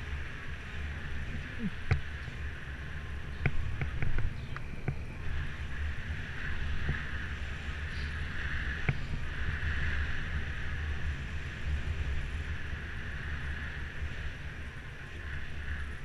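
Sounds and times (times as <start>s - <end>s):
road and tyre rumble: 0.0s - 16.0s
wind buffeting microphone: 0.0s - 16.0s.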